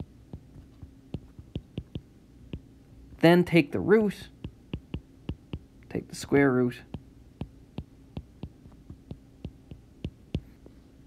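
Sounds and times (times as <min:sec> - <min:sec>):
faint steady hum: 0:00.0 - 0:11.0
stylus tapping on glass screen: 0:00.3 - 0:02.0, 0:04.4 - 0:05.7.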